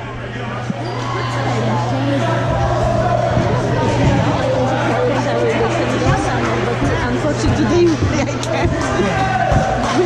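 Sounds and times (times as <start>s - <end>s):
spectators chattering: 0.0s - 10.0s
steady low hum: 0.0s - 10.0s.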